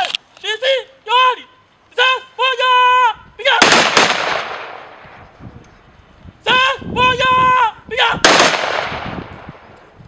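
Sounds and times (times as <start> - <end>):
person shouting command: 0.4 - 3.8, 6.4 - 8.3
rifle shots with echo: 3.6 - 5.1, 8.2 - 9.6.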